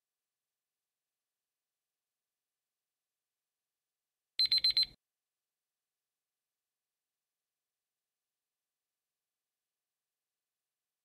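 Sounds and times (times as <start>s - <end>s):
high-pitched timer beeps: 4.4s - 4.9s.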